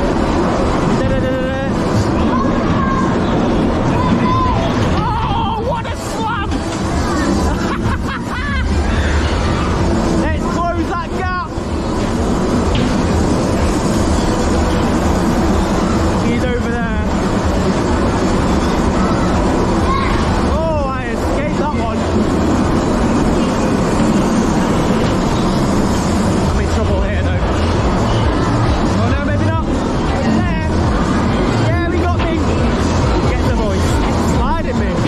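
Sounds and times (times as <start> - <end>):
bumper car rumble: 0.0 - 35.0.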